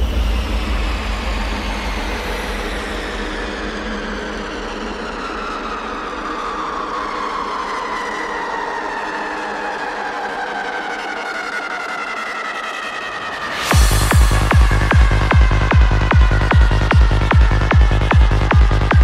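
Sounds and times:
noisy synth wash: 0.0 - 19.0.

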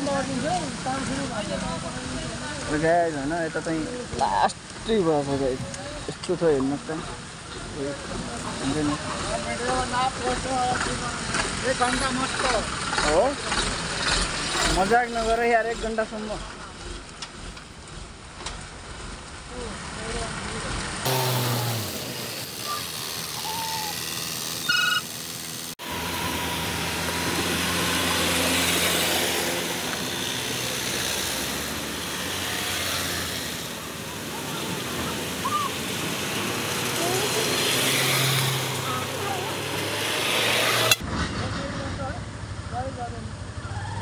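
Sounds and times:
trucks passing: 0.0 - 44.0
motorcycle engine running: 7.0 - 41.0, 41.6 - 44.0.

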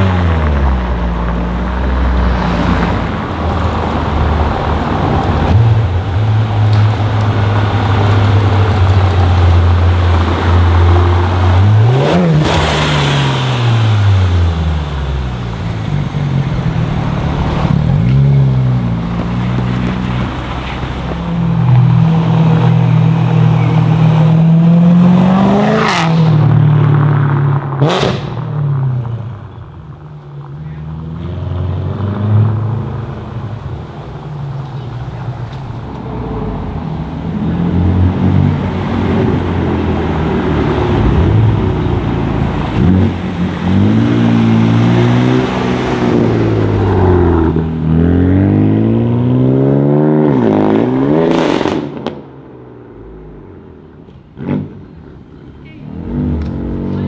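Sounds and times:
car engine revving: 0.0 - 28.8, 35.8 - 53.6, 55.9 - 57.0.

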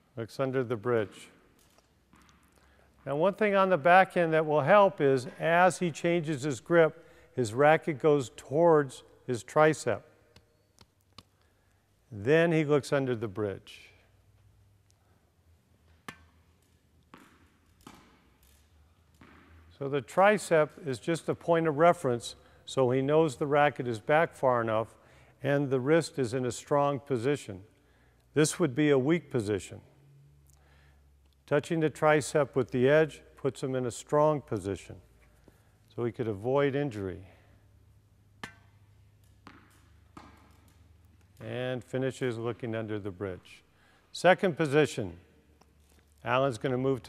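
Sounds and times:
ball bouncing on court: 2.0 - 3.2, 15.9 - 19.8, 38.4 - 41.5
tennis racket hitting ball: 15.9 - 19.7, 38.4 - 41.4.

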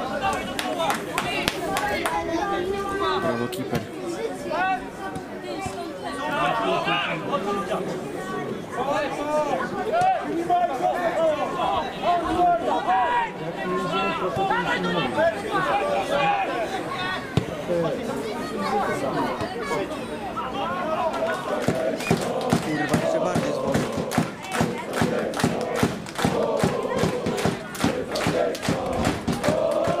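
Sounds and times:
overlapping chatter: 0.0 - 30.0
people talking over one another: 0.0 - 30.0.

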